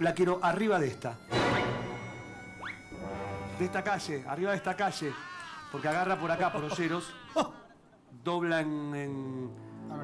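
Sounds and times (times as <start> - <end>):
background music: 0.0 - 7.6, 8.4 - 10.0.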